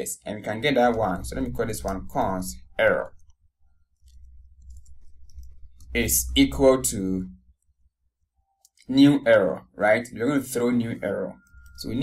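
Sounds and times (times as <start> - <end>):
low steady hum: 0.0 - 12.0
keyboard keys clicking: 4.0 - 5.9.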